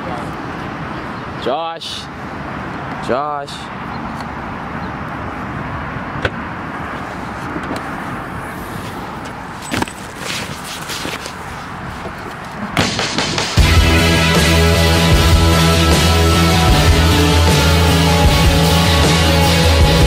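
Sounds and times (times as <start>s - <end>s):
outdoor background noise: 0.0s - 20.0s
loud music: 12.8s - 20.0s.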